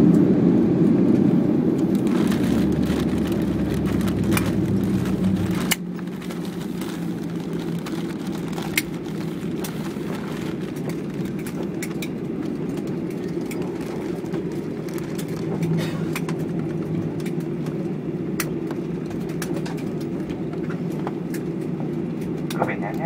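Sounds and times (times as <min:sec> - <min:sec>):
jet cabin rumble: 0:00.0 - 0:23.0.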